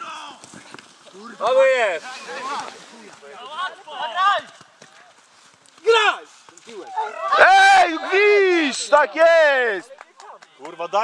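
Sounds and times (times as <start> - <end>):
voices shouting: 5.8 - 9.8.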